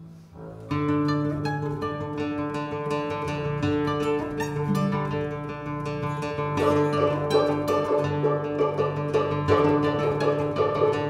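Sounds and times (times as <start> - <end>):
plucked classical guitar notes: 0.0 - 11.0
held string orchestra tones: 0.6 - 11.0.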